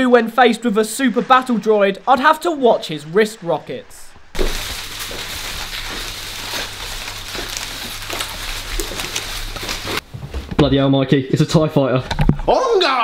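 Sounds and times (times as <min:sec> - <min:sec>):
crackling hiss: 0:00.8 - 0:10.0.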